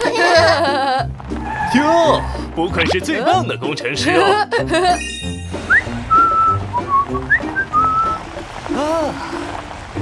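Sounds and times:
light background music: 0:00.0 - 0:10.0
person whistling a tune: 0:05.6 - 0:08.2.

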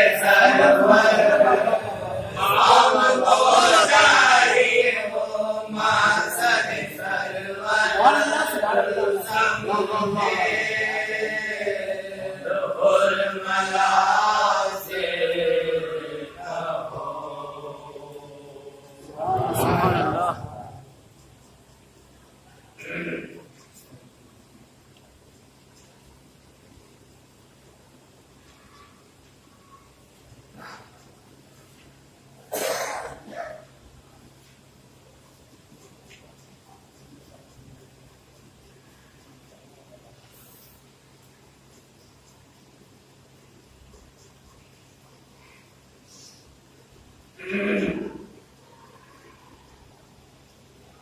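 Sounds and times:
men chanting melodic elegy: 0:00.0 - 0:20.8
man coughing: 0:32.5 - 0:33.6.

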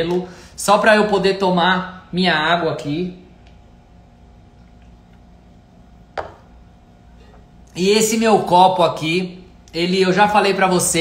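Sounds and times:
low room hum: 0:00.0 - 0:11.0
cup set down on surface: 0:06.2 - 0:06.5.

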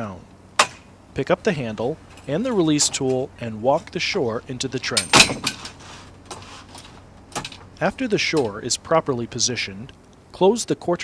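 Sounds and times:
faint handling noise: 0:01.9 - 0:08.7
metal shore clattering and scraping: 0:04.8 - 0:08.6.

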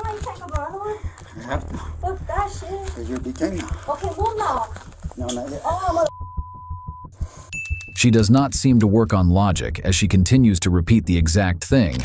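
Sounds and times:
person speaking: 0:00.0 - 0:06.1
censor bleep: 0:06.1 - 0:08.2.

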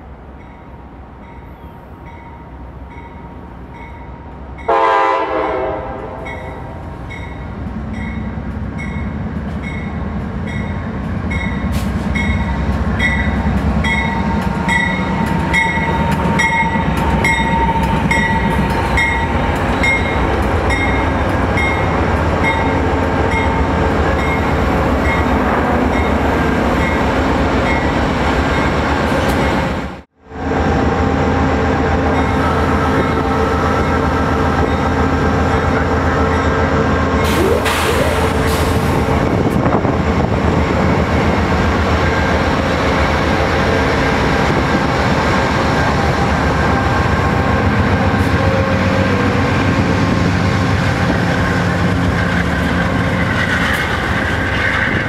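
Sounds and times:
passing train rumble: 0:00.0 - 0:55.0
diesel locomotive horn: 0:04.6 - 0:06.8, 0:30.2 - 0:39.7, 0:45.5 - 0:53.0.

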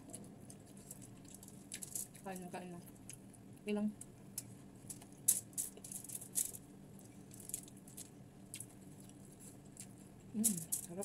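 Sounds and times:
chewing crunchy food: 0:00.0 - 0:11.0.

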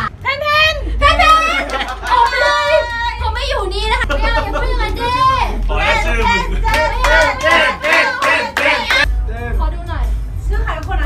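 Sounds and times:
music: 0:00.0 - 0:11.0
people clapping in rhythm: 0:01.4 - 0:03.3, 0:04.0 - 0:09.1
people chanting: 0:04.0 - 0:09.1.

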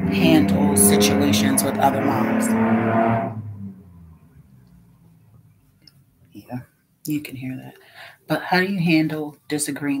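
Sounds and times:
loud passing vehicle: 0:00.0 - 0:05.5
faint background noise: 0:00.0 - 0:10.0.

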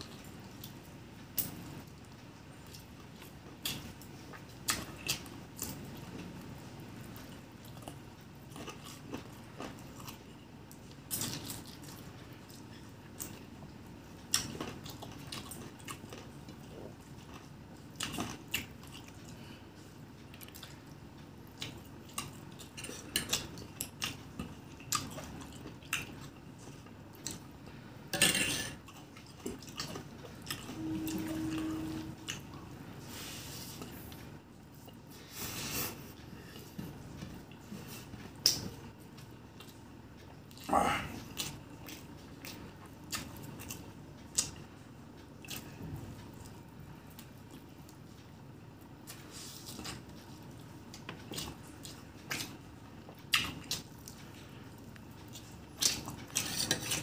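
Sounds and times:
short steady hum: 0:30.5 - 0:33.1
wet chewing and mouth clicks: 0:37.5 - 0:40.7, 0:49.0 - 0:57.0.

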